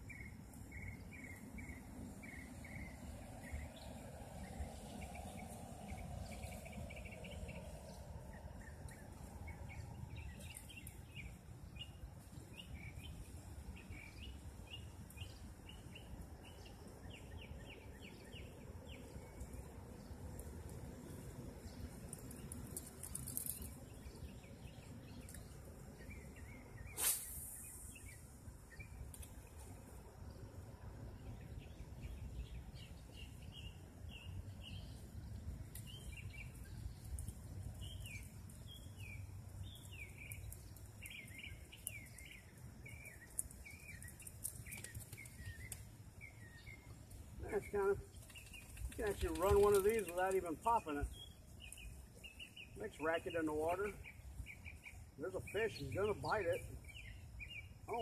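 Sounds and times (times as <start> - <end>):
low outdoor background noise: 0.0 - 58.0
small birds chirping: 0.0 - 58.0.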